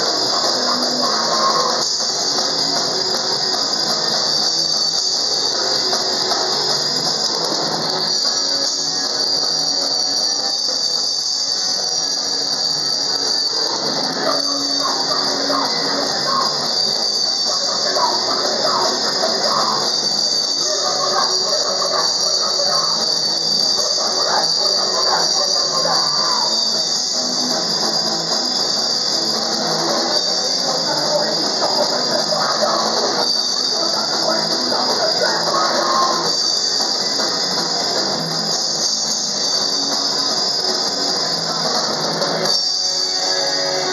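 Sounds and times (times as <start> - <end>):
punk band playing live: 0.0 - 8.4, 12.6 - 43.9
harsh high hiss: 0.0 - 43.9.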